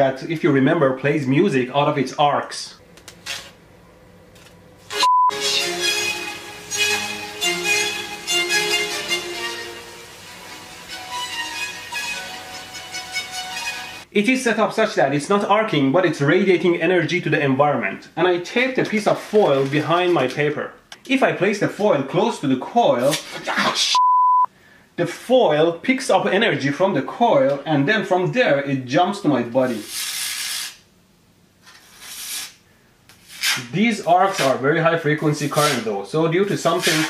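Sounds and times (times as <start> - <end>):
musical tesla coil notes: 4.9 - 14.1
crackling hiss of arcs: 18.8 - 21.1, 29.6 - 30.9, 31.6 - 34.6, 36.5 - 37.0.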